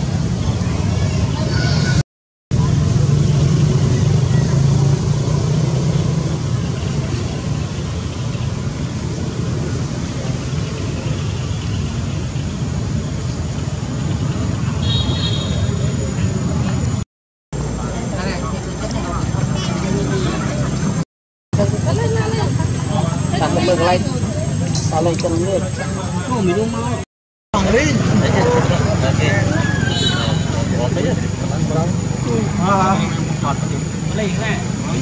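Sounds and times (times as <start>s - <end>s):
faint voices: 17.6s - 21.0s.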